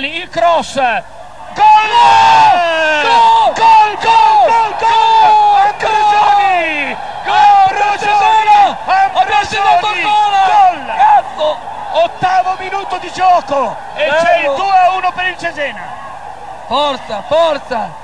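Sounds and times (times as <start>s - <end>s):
man yelling with joy: 1.6s - 13.3s.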